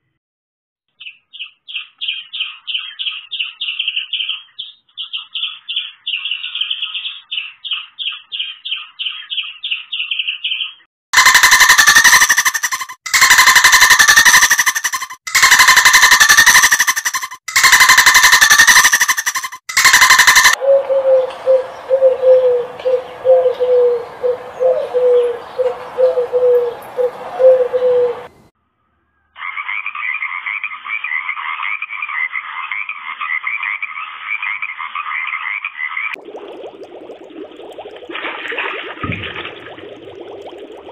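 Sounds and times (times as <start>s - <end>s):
fast high chirping: 11.2s - 20.6s
loud harsh animal calls: 11.2s - 20.6s
squirrel chattering: 11.2s - 20.6s
pigeon cooing low notes: 20.6s - 28.3s.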